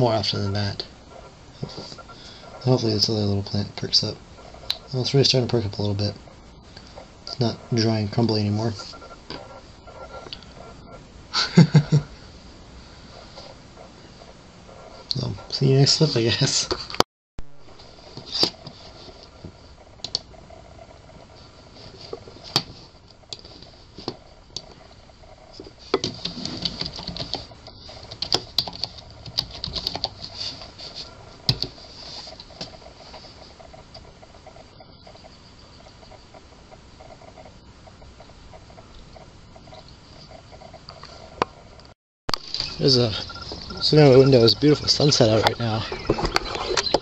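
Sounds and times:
keyboard typing: 26.0s - 30.4s.

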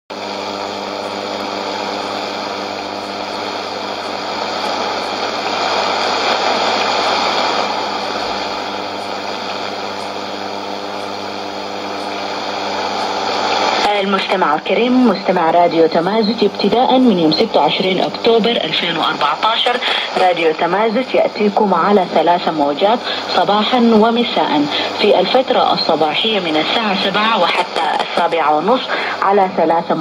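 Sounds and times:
buzzing hum: 0.1s - 30.0s
radio static hiss: 0.1s - 30.0s.

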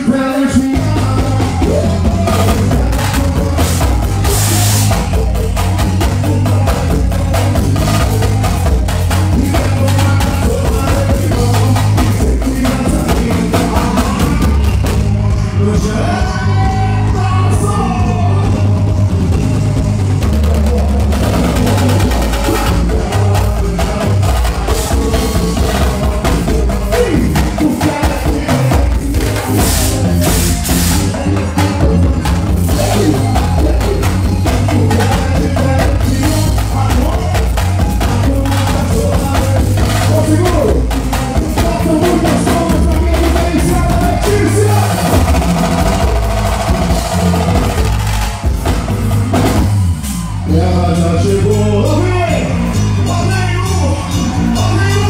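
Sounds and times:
fast dense percussion: 0.0s - 55.0s
heavy bass line: 0.0s - 55.0s
live band music: 0.0s - 55.0s.

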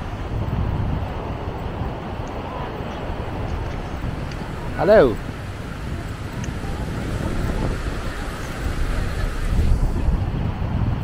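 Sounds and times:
wind on microphone: 0.0s - 11.0s
distant engine drone: 1.2s - 10.1s.

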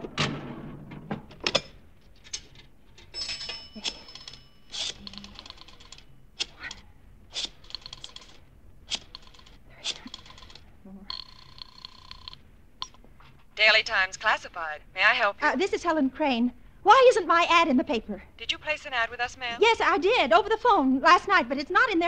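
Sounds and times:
coin dropping into slot: 2.3s - 6.0s, 9.2s - 12.4s
telephone ringing tone: 3.3s - 6.2s, 9.2s - 12.4s
rotary dial clicking: 3.9s - 6.8s, 7.4s - 13.0s.

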